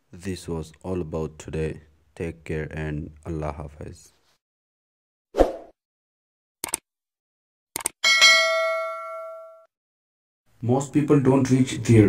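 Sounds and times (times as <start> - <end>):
quick clicks: 6.6 - 6.8, 7.8 - 8.0
bright bell ding: 8.0 - 9.7.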